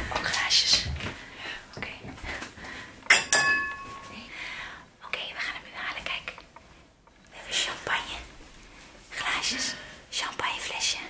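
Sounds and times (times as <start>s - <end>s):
glass clink: 3.1s - 4.3s
hushed whispering: 7.3s - 8.3s, 9.1s - 11.0s.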